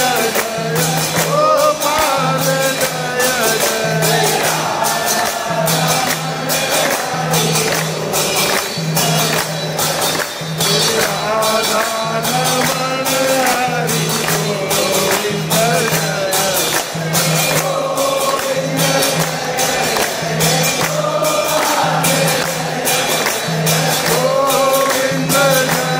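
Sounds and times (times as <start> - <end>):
clapping: 0.0 - 25.9
crowd singing devotional song: 0.0 - 25.9
hand cymbals ringing: 0.0 - 25.9.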